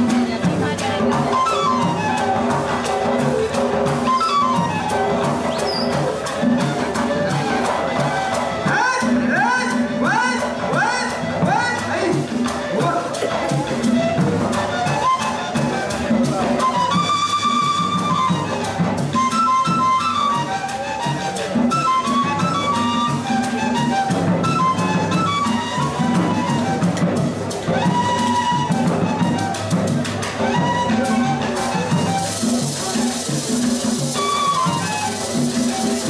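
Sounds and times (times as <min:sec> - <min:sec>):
cane flutes playing melody: 0:00.0 - 0:36.0
hand drums fast beat: 0:00.0 - 0:36.0
maraca shaking: 0:00.0 - 0:36.0.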